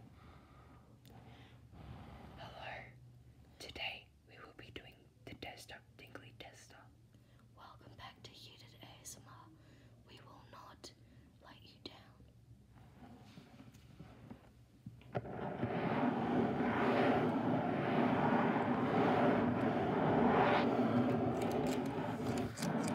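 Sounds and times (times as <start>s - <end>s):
low steady hum: 0.0s - 22.9s
close-up whispering: 2.4s - 3.0s, 3.6s - 7.0s, 7.6s - 12.3s.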